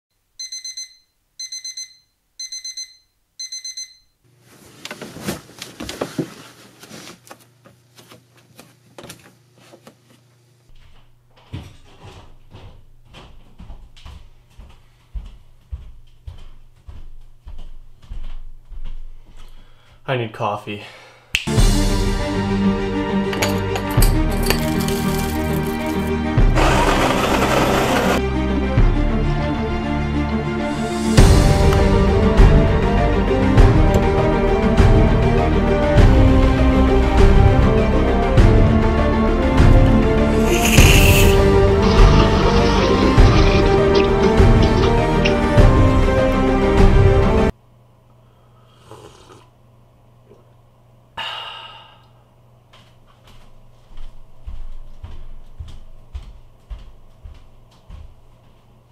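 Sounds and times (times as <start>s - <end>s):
digital alarm clock beeping: 0.4s - 4.2s
background music: 21.5s - 47.5s
coffee beans pouring into grinder: 24.3s - 28.2s, 40.4s - 44.9s.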